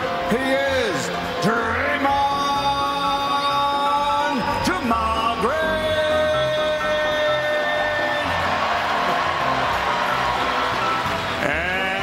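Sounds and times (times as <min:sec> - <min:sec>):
arena music: 0:00.0 - 0:12.0
announcer calling over loudspeaker: 0:00.3 - 0:08.4
crowd cheering: 0:05.4 - 0:12.0.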